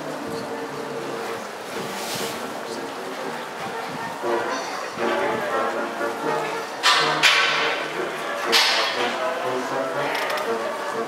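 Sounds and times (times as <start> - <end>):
brass band playing: 4.2 - 11.0.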